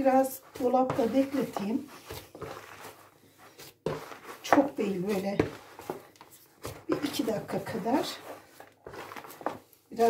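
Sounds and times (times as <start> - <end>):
hand squishing dough in bowl: 0.0 - 10.0.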